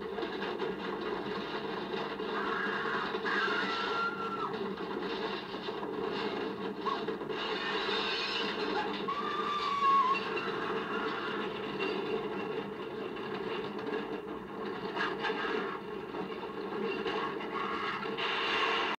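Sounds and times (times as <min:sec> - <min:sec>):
television rushing noise: 0:00.0 - 0:19.0.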